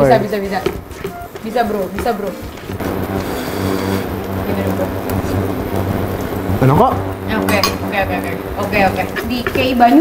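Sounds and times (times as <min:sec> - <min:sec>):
induction cooktop humming: 0:00.0 - 0:10.0
sauce hissing in pan: 0:00.8 - 0:10.0.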